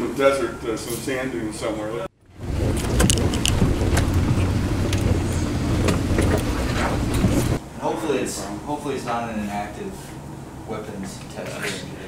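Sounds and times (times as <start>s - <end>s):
low rumbling noise: 1.5s - 9.0s.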